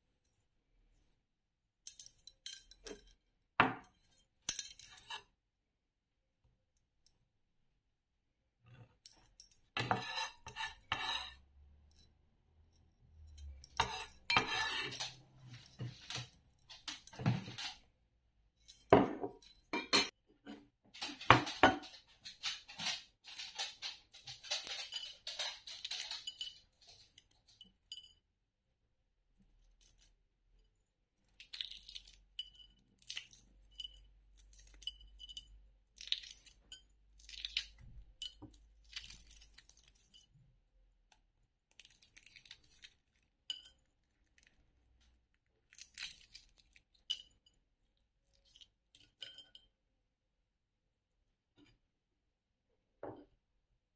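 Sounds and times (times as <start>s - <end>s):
knife scraping on cutting board: 9.8s - 11.4s, 13.7s - 16.3s
knife clinking against glass bowl: 13.3s - 15.1s, 49.0s - 49.7s
eggshell cracking and peeling: 31.3s - 32.3s, 35.9s - 40.0s, 41.6s - 43.4s, 45.4s - 47.1s.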